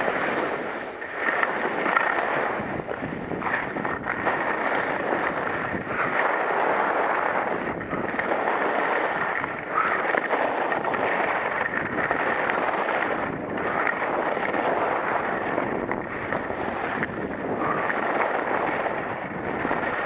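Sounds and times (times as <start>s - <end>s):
skis sliding over snow: 0.0s - 20.0s
wind rushing over microphone: 0.0s - 20.0s.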